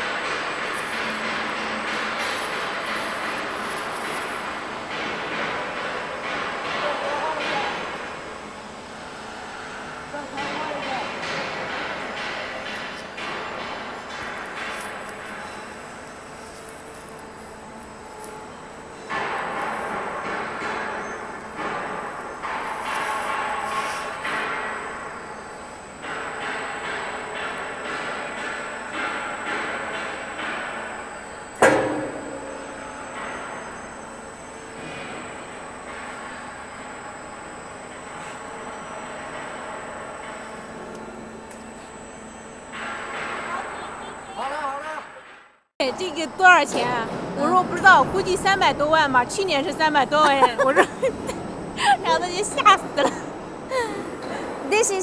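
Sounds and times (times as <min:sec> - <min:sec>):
steel sheet grinding through rollers: 0:00.0 - 0:55.0
sharp metallic bang: 0:31.6 - 0:34.1.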